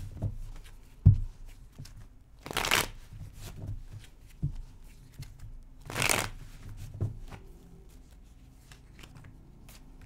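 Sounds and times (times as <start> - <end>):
cards clicking and sliding: 5.2 - 6.4
cards riffling: 5.9 - 6.3.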